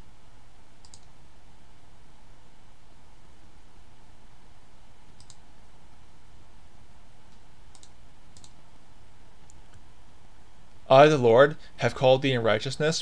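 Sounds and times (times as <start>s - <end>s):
low background hiss: 0.0s - 13.0s
computer clicks: 0.8s - 1.2s, 5.1s - 5.4s, 7.3s - 8.6s
man talking: 10.8s - 13.0s.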